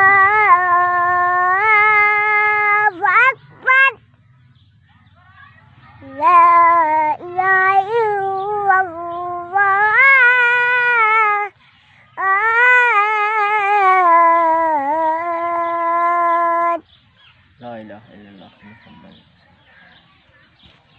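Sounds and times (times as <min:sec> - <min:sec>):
person chanting recitation: 0:00.0 - 0:04.0, 0:05.8 - 0:16.9.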